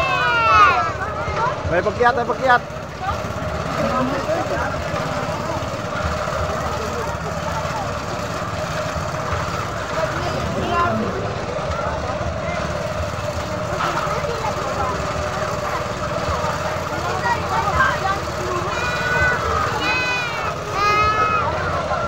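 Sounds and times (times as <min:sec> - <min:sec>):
people and children chattering: 0:00.0 - 0:22.0.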